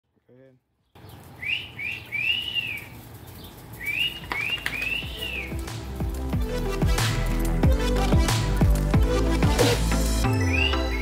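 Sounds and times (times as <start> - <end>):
bird whistling call: 1.0 - 2.9, 3.8 - 5.6, 10.3 - 11.0
music: 4.8 - 11.0.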